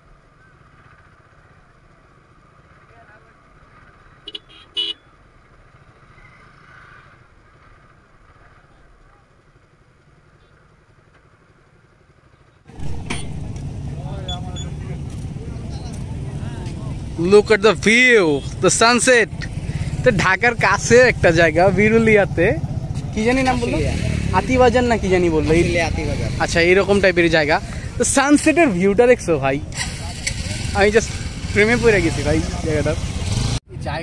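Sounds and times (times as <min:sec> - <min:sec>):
steady outdoor rush: 0:00.0 - 0:34.0
motorcycle engine low rumble: 0:07.3 - 0:34.0.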